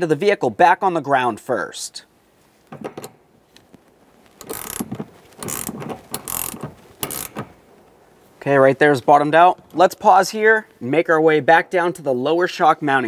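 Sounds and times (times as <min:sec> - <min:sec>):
ratcheting wrench clicking: 0:04.4 - 0:07.6.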